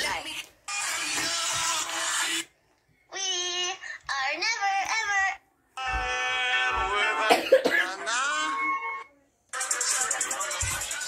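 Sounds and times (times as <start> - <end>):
music: 8.5 - 11.0.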